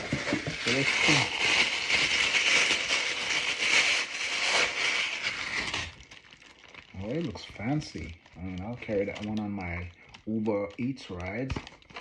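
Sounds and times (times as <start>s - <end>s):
thin plastic bag crinkling: 0.0s - 12.0s.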